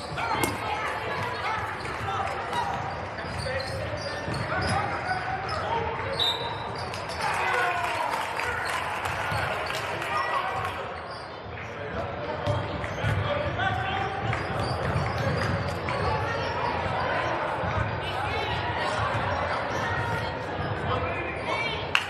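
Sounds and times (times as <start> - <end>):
basketball bouncing on court: 0.0 - 5.2, 12.4 - 16.2.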